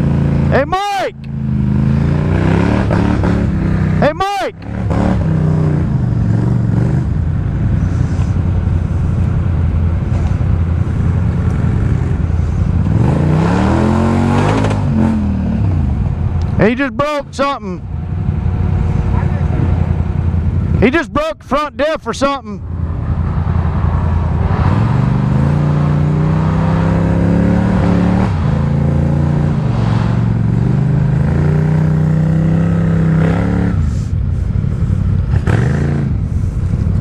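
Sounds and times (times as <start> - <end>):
atv engine revving: 0.0 - 37.0.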